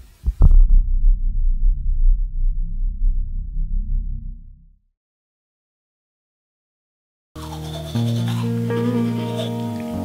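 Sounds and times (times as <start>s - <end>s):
music of low notes: 7.4s - 10.0s.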